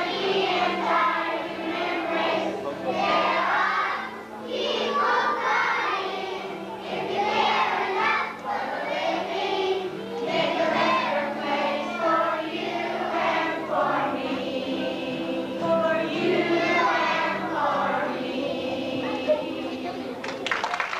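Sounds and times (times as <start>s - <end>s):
children's choir singing: 0.0s - 20.4s.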